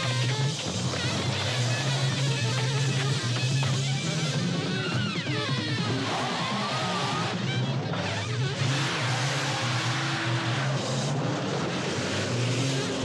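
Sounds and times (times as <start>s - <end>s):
car engine revving hard: 0.0s - 13.0s
tyre squeals: 0.0s - 13.0s.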